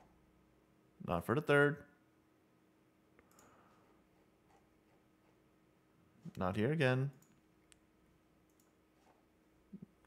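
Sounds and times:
low steady hum: 0.0 - 10.0
faint click: 3.2 - 3.5.

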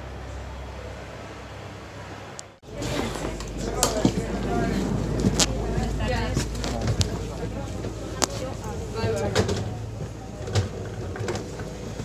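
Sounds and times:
passenger chatter: 0.0 - 12.0
cabin hum: 2.4 - 12.0.

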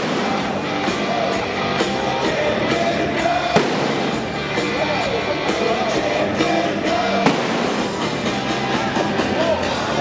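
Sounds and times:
live rock band playing loudly: 0.0 - 10.0
sharp bang: 3.6 - 4.3, 7.2 - 8.0.

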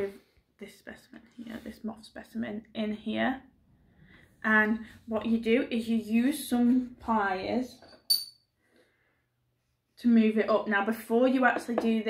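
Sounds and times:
metallic clink of pliers: 7.9 - 8.4.

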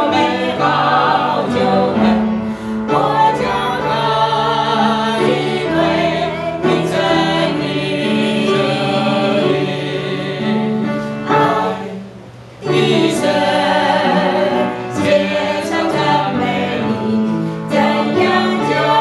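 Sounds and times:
group singing a hymn: 0.0 - 19.0.

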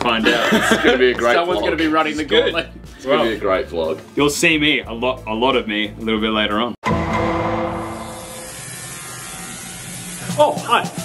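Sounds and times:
shower water spraying: 7.9 - 11.0.

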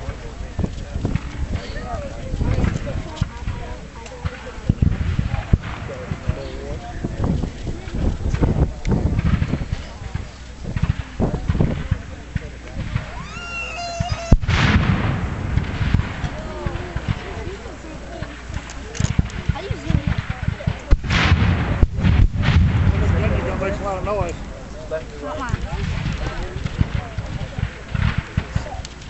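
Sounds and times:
musket and cannon shots: 0.0 - 7.2, 7.8 - 29.0
low rumble: 0.0 - 29.0.

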